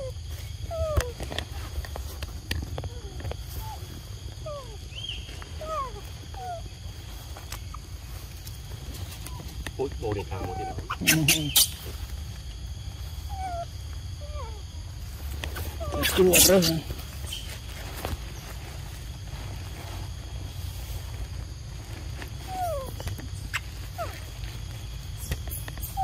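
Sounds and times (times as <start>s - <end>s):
young macaques squeaky calls: 2.9s - 6.7s, 10.2s - 12.0s, 13.2s - 14.6s, 15.5s - 17.6s, 22.4s - 24.4s, 25.2s - 26.0s.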